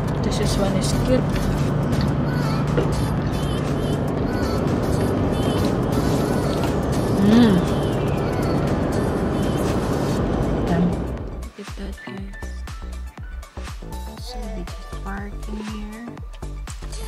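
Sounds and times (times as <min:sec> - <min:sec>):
car cabin road and engine noise: 0:00.0 - 0:11.5
music playing: 0:00.0 - 0:17.0.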